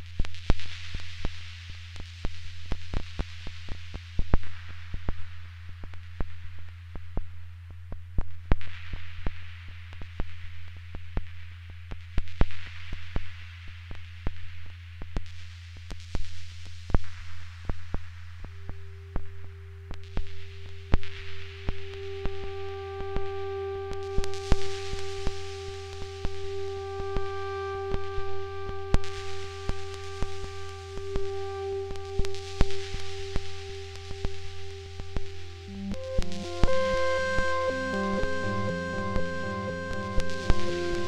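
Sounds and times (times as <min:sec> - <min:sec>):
ambient synthesizer drone: 0:17.6 - 0:41.0
fast sequenced synth notes: 0:20.5 - 0:41.0.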